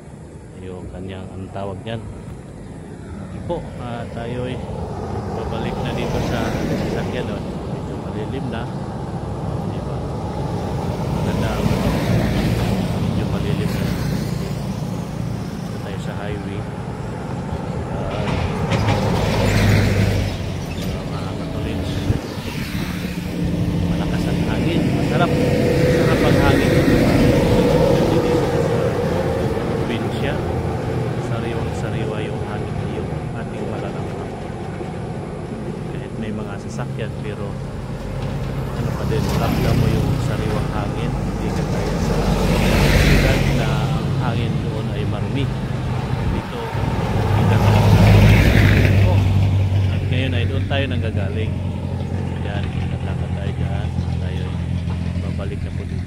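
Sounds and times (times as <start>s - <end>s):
dump truck passing: 0.0s - 56.0s
highway traffic engine drone: 0.0s - 56.0s
vehicle approaching: 0.0s - 56.0s.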